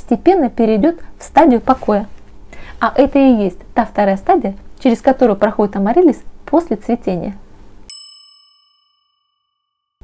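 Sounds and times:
bell-like ding: 7.9s - 10.0s.

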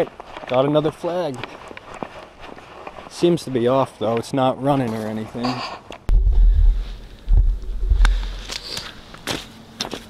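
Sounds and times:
boots walking on snowy ice: 0.0s - 5.4s
low rumble on microphone: 6.1s - 8.6s.

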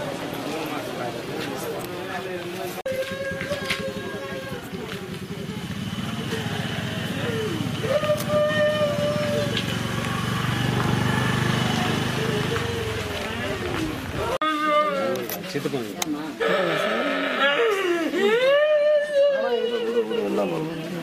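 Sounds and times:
voices: 0.0s - 21.0s
engine rumbling: 2.9s - 14.4s.

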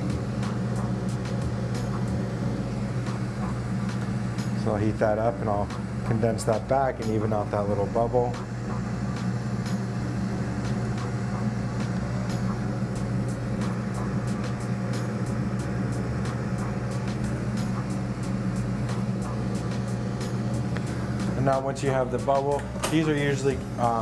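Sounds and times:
low even hum: 0.0s - 24.0s
torch flame roaring: 0.0s - 24.0s.

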